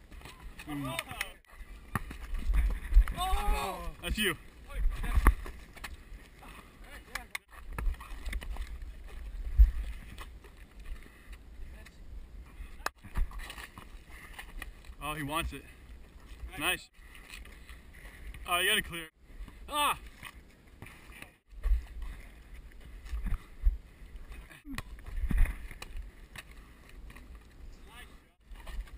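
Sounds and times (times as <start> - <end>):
person shouting: 3.2 - 4.0, 19.7 - 20.0
wind rumble on microphone: 7.6 - 11.0.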